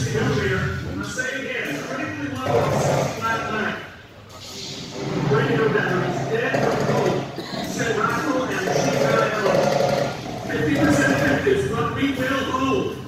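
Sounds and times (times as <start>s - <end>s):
indistinct voices talking: 0.0s - 13.0s.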